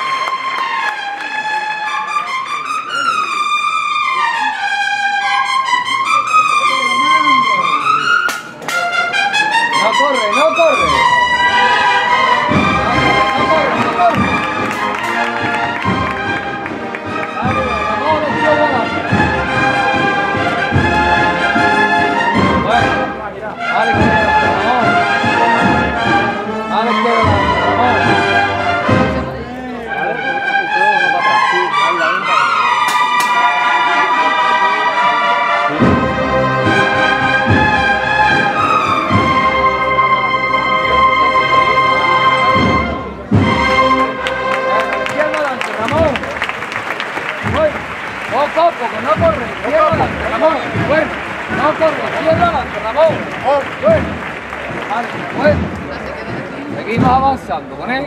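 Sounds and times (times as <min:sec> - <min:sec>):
trumpet melody: 0:00.0 - 0:55.7
brass band playing march: 0:00.0 - 0:58.0
drums: 0:27.2 - 0:29.4, 0:35.7 - 0:39.9, 0:42.4 - 0:44.1, 0:45.8 - 0:58.0.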